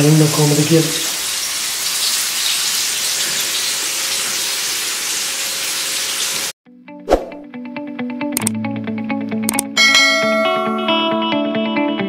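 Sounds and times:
hot oil sizzling: 0.0s - 6.6s.

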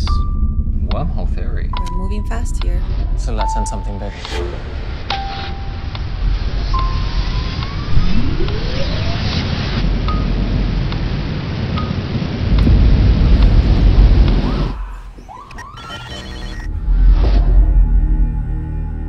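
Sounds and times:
rising sweeping tones: 0.0s - 10.7s
dense rumble: 0.0s - 15.4s, 16.3s - 19.0s.

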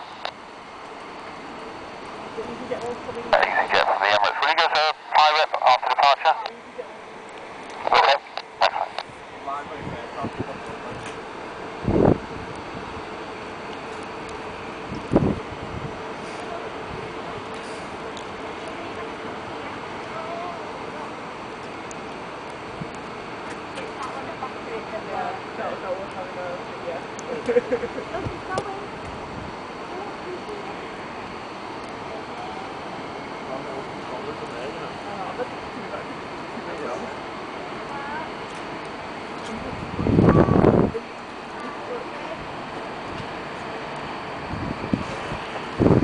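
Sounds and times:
people talking: 2.4s - 7.0s, 7.8s - 11.0s, 23.8s - 29.0s, 29.9s - 30.9s
radio voice through small speaker: 2.6s - 6.7s, 7.7s - 9.1s
steady rushing noise: 3.3s - 6.5s, 7.1s - 13.1s.

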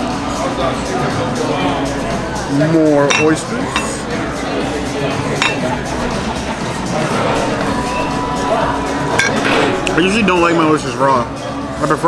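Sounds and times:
busy restaurant din: 0.0s - 12.0s
tableware clink with ringing: 3.1s - 4.0s, 5.4s - 5.8s, 9.1s - 9.5s.

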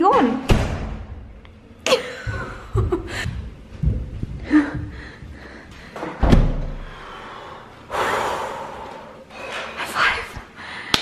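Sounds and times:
door slamming shut: 0.4s - 1.1s, 6.2s - 6.8s
long breathy exhale: 6.9s - 9.2s.

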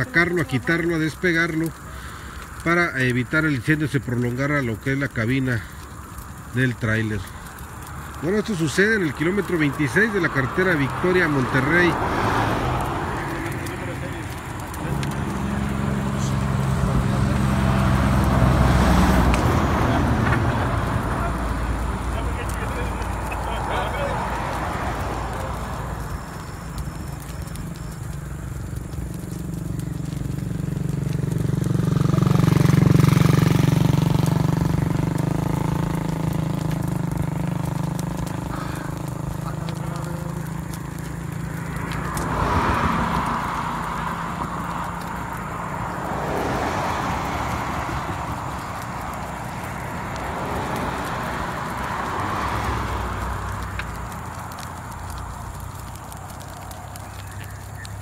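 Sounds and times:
traffic noise: 0.0s - 58.0s
vehicle passing on highway: 5.4s - 58.0s.

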